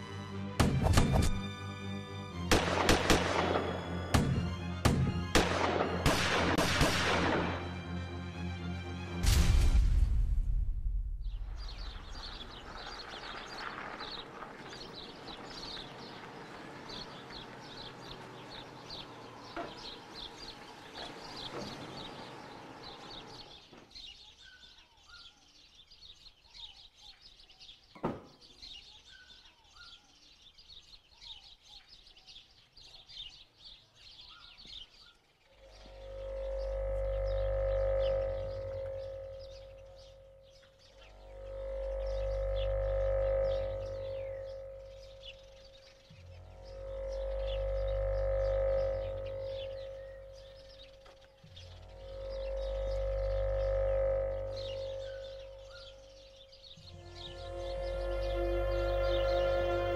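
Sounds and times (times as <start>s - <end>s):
droning music with deep bass: 0.0s - 12.5s, 35.5s - 59.9s
small birds chirping: 11.2s - 59.9s.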